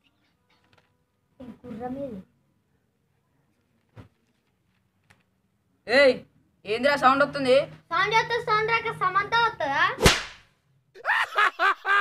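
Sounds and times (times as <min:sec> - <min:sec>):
sharp loud crack: 0:10.0 - 0:10.5.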